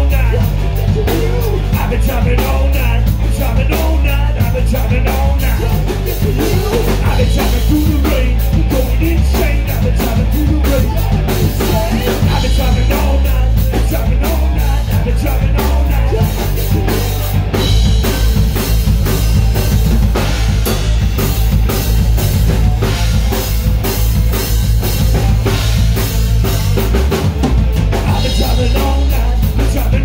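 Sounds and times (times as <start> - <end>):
rock band playing live: 0.0 - 30.0.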